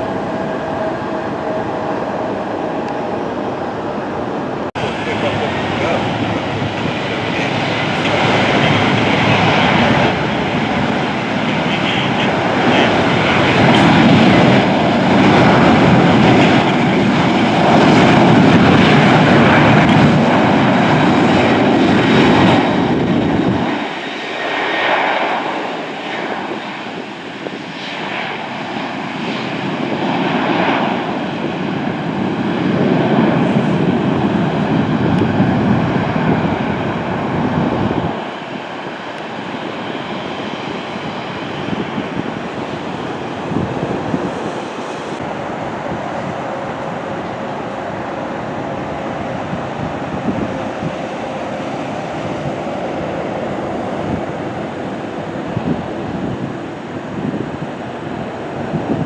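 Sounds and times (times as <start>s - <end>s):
jet engines running: 0.0s - 59.0s.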